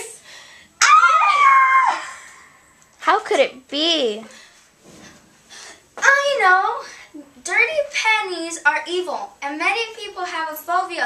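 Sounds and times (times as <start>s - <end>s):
girl screaming: 0.8s - 2.6s.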